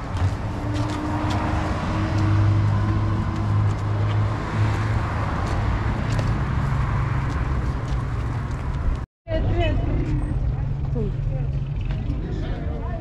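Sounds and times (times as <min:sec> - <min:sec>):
low traffic rumble: 0:00.0 - 0:13.0.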